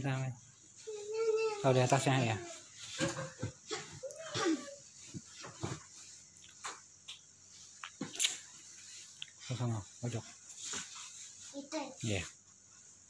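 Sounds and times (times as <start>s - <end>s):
bedding rustling: 0.0s - 7.8s, 8.4s - 13.0s.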